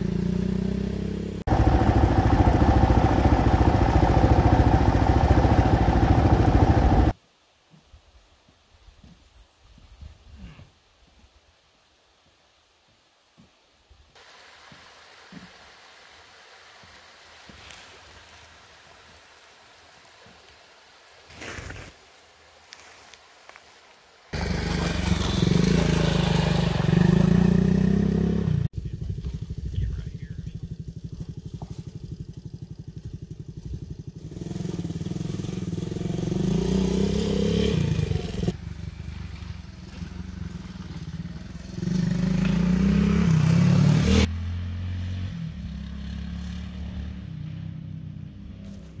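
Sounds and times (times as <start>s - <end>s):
motorcycle engine revving and idling: 0.0s - 7.2s, 24.4s - 49.0s.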